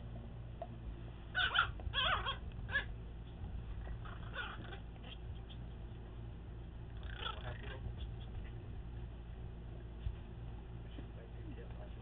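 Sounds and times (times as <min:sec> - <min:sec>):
dog whimpering: 0:01.4 - 0:02.9, 0:03.8 - 0:05.7, 0:07.0 - 0:08.4.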